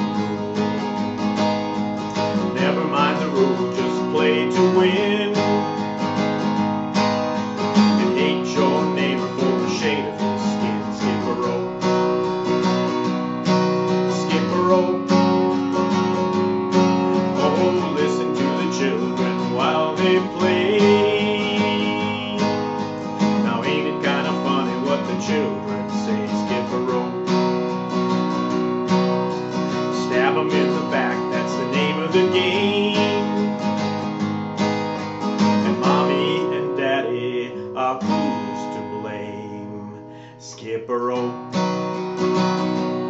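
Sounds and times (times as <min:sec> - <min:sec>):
man singing: 0:00.0 - 0:01.3, 0:02.1 - 0:06.3, 0:07.6 - 0:12.7, 0:13.9 - 0:16.1, 0:17.0 - 0:27.8, 0:29.5 - 0:34.0, 0:35.4 - 0:41.6
acoustic guitar strumming: 0:00.0 - 0:43.0.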